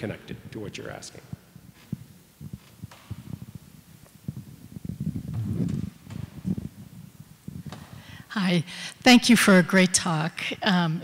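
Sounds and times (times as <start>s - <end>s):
microphone handling thumps and rumbling: 1.2s - 8.2s.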